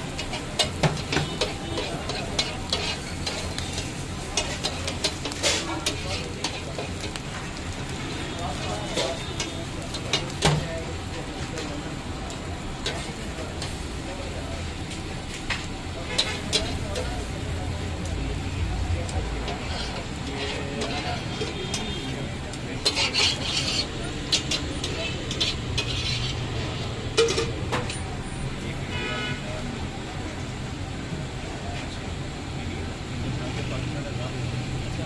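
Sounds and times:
metal utensils scraping griddle: 0.0s - 11.8s, 12.8s - 29.4s
light sizzle: 0.0s - 35.0s.

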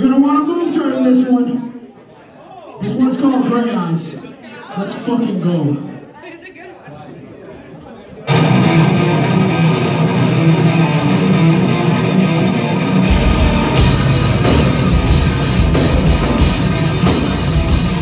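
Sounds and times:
crowd murmur: 0.6s - 18.0s
distorted electric guitar: 8.3s - 18.0s
bass and drums: 10.4s - 18.0s.

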